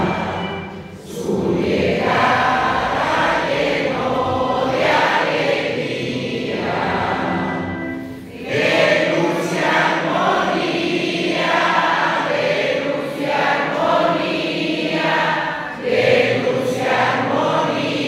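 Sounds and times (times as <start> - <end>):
church choir singing a hymn: 0.0 - 18.0.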